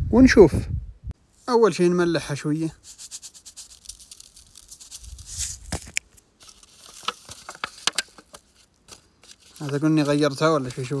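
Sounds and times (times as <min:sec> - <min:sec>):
salt grains pattering onto meat: 0:03.0 - 0:05.4.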